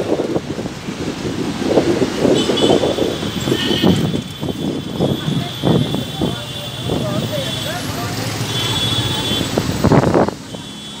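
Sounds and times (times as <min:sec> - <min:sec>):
road and engine noise: 0:00.0 - 0:11.0.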